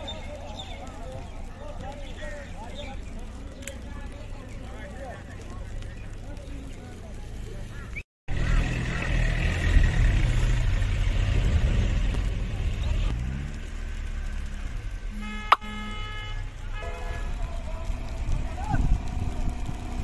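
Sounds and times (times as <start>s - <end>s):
heavy vehicle engine rumble: 0.0s - 20.0s
car horn honking: 15.1s - 17.6s
sharp click: 15.5s - 15.7s.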